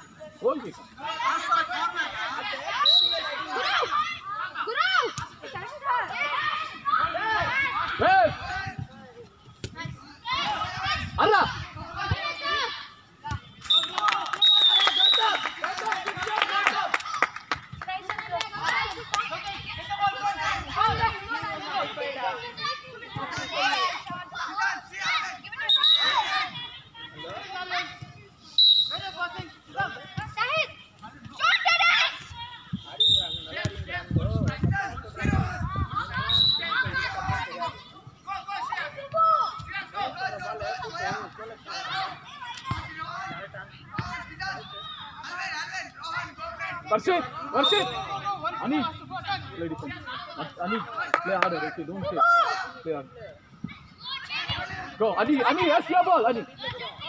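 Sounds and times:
children and onlookers shouting: 0:01.1 - 0:08.6.

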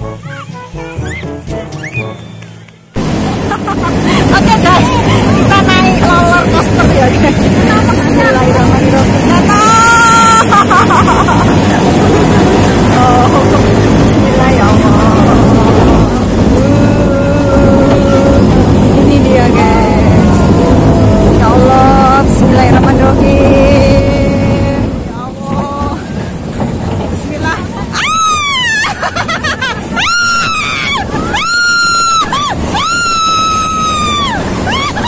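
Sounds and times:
roller coaster rumbling on track: 0:00.0 - 0:35.0.

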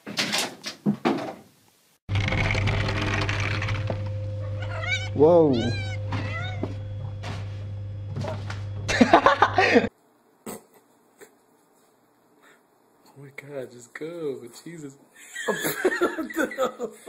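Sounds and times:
low hum: 0:02.1 - 0:09.9
cat meowing: 0:04.5 - 0:06.8.

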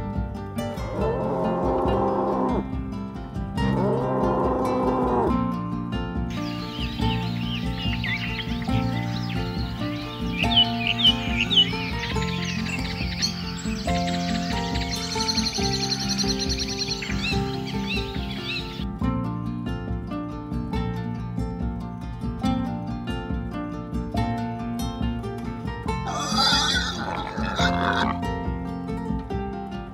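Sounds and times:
background music: 0:00.0 - 0:29.9
birds chirping and calling: 0:06.3 - 0:18.8, 0:26.0 - 0:28.2
sharp bird chirps: 0:06.3 - 0:18.8
fast high bird trill: 0:06.4 - 0:18.8, 0:26.1 - 0:28.2.

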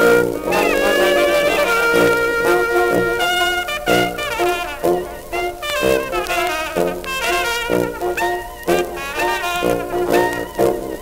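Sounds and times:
jazz band on old record: 0:00.0 - 0:11.0.

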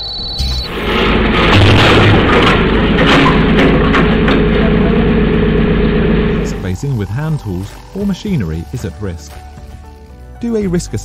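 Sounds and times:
electrical hum with hiss: 0:00.0 - 0:09.2
person speaking: 0:06.4 - 0:09.4.

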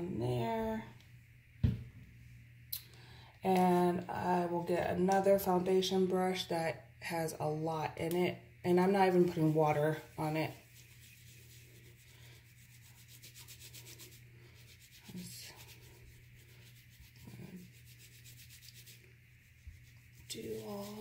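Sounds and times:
steady low hum: 0:00.0 - 0:21.0
brush scrubbing on silicone mat: 0:08.9 - 0:21.0.

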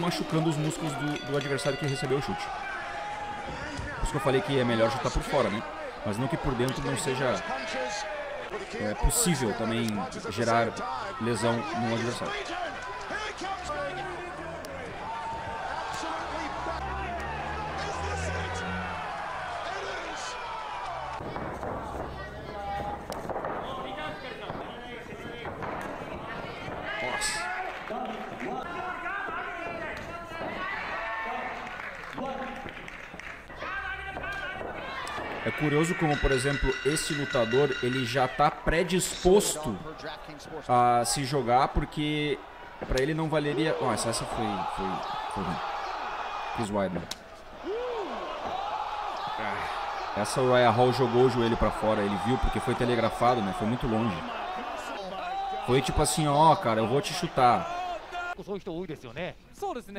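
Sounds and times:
arena background noise: 0:00.0 - 0:59.9
men shouting: 0:11.0 - 0:22.2, 0:47.5 - 0:58.4.

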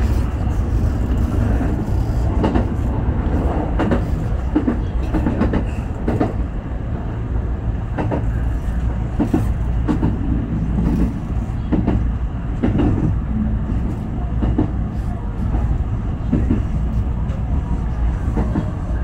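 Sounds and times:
train rumbling: 0:00.0 - 0:19.0.

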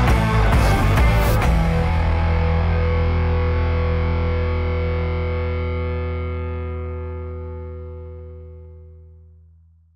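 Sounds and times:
distorted electric guitar chord: 0:00.0 - 0:09.4.

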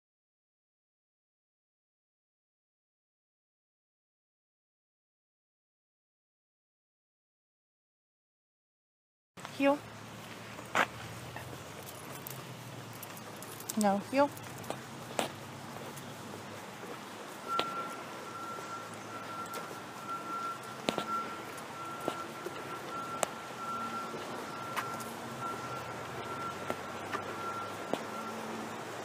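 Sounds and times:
footsteps on wooden decking: 0:10.1 - 0:28.6
metal collar and chain clinking: 0:11.3 - 0:15.1
faint high pulsing tone: 0:17.4 - 0:28.8.

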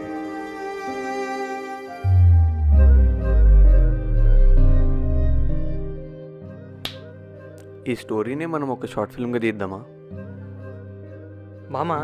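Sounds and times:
soft background music: 0:00.0 - 0:12.0
finger snap: 0:06.8 - 0:07.8.

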